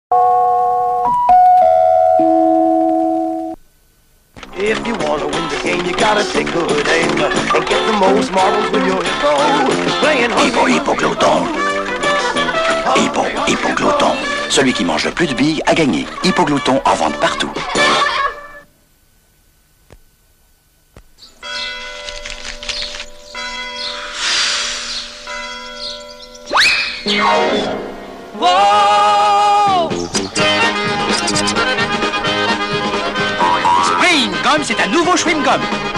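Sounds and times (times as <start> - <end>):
electronic chime jingle: 0.1 - 3.6, 25.1 - 28.6
sharp tape clicks: 4.3 - 12.8, 22.0 - 23.2
bells ringing: 21.4 - 24.2, 25.2 - 26.5.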